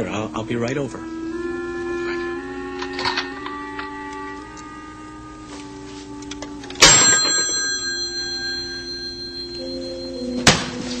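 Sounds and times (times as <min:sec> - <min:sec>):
soft background music: 0:00.0 - 0:11.0
telephone bell ringing: 0:06.8 - 0:11.0.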